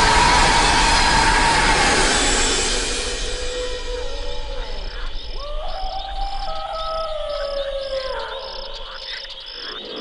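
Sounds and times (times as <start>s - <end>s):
slow gliding background music: 0.0s - 9.2s
crickets chirping: 0.0s - 10.0s.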